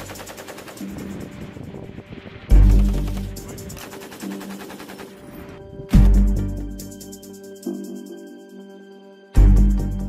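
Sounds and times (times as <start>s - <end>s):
machine gun automatic burst: 0.0s - 1.3s, 2.6s - 5.3s
background music: 0.0s - 10.0s.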